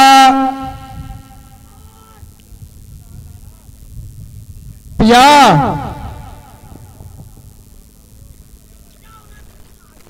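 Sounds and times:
man calling out: 0.0 - 2.2, 5.0 - 7.0.

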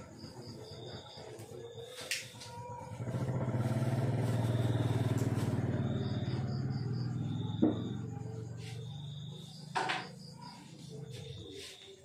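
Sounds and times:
small engine running: 2.7 - 9.0.

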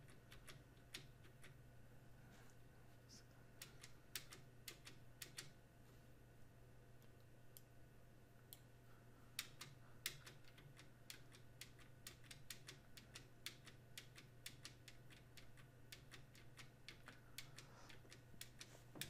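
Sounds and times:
computer keys clicking: 0.0 - 1.6, 3.6 - 5.6, 9.4 - 18.7
low steady hum: 0.0 - 19.0.

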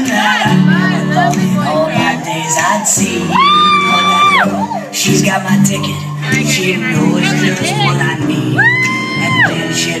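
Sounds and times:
pop song over sound system: 0.0 - 10.0.

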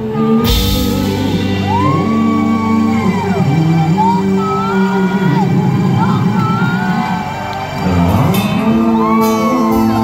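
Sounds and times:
guitar chords: 0.0 - 10.0
live rock band: 0.0 - 10.0.

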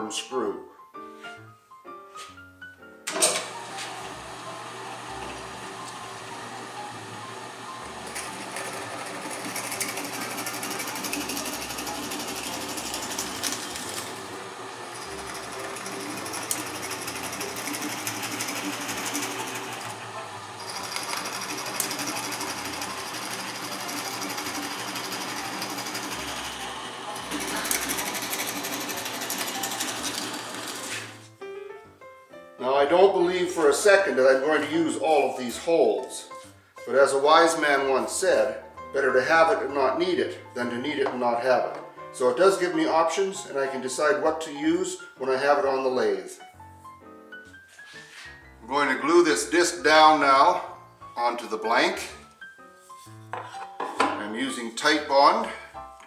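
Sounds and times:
drill press motor hum: 3.3 - 31.2
drill bit cutting wood: 3.9 - 31.2.

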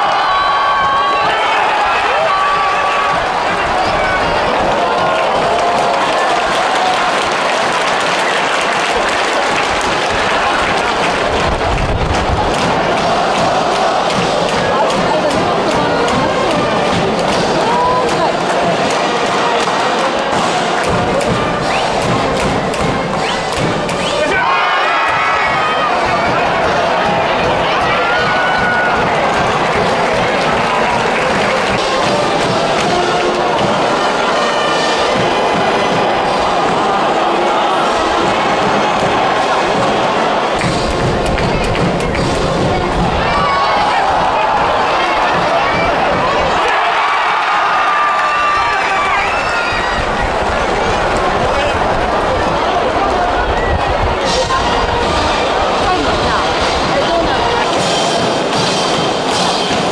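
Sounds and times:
crowd chanting: 0.0 - 59.9
drum beats: 0.0 - 59.9
stadium crowd: 0.0 - 59.9.

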